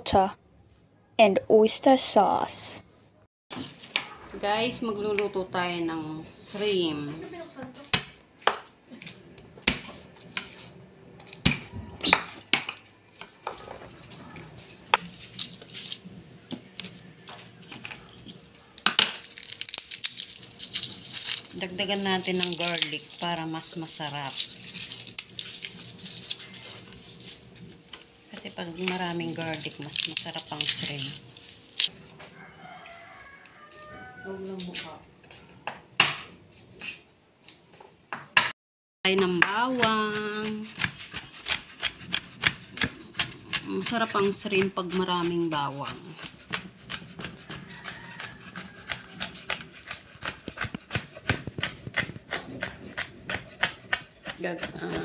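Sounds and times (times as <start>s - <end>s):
papery crackle of garlic bulb: 16.9s - 27.8s, 28.4s - 32.0s, 46.8s - 53.3s.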